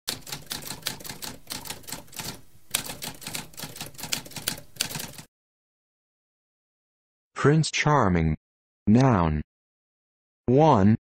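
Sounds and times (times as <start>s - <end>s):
typewriter keystrokes clacking: 0.1s - 5.3s.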